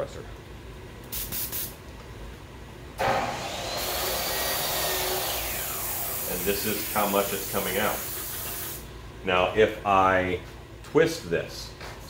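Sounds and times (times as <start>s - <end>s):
airbrush spray hissing: 1.1s - 1.8s, 6.2s - 8.9s.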